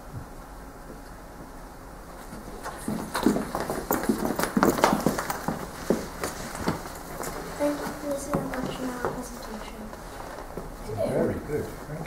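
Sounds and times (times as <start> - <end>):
children's footsteps on wooden floor: 2.1 - 10.8.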